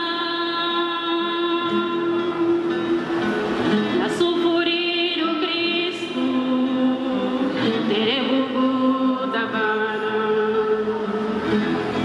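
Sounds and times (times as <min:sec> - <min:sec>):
woman singing a hymn: 0:00.0 - 0:02.8, 0:03.9 - 0:11.4
acoustic guitar: 0:00.0 - 0:12.0.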